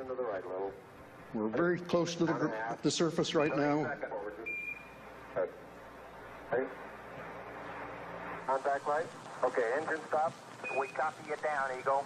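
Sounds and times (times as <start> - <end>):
radio hiss: 0.0 - 12.0
clipped radio voice: 8.5 - 12.0.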